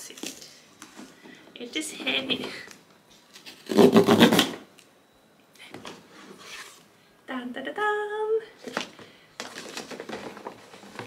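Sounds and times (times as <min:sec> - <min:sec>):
paper and cardboard rustling: 0:08.6 - 0:11.0.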